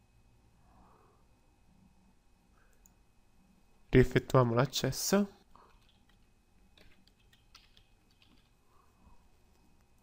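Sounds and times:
keyboard keystrokes: 5.8s - 8.5s.

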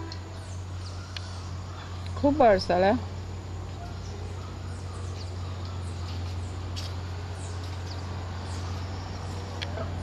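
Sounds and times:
birds chirping: 0.0s - 10.0s
low hum: 0.0s - 10.0s.

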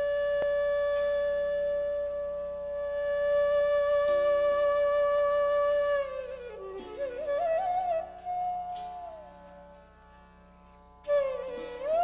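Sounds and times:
flute holding long note: 0.0s - 9.7s, 11.1s - 12.0s.

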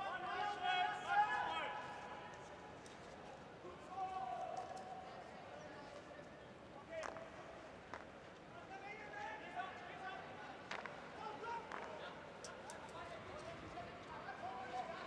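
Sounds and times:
faint stadium crowd: 0.0s - 15.0s
hockey sticks hitting ball: 7.0s - 8.2s, 10.6s - 12.1s.

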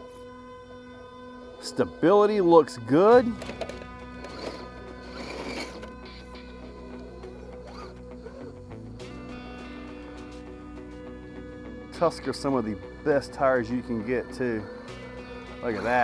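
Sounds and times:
background music: 0.0s - 16.0s
electric motor whirring: 3.0s - 10.4s.

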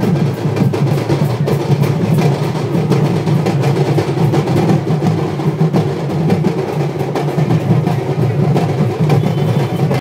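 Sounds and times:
folk band fast dense drumming: 0.0s - 10.0s.

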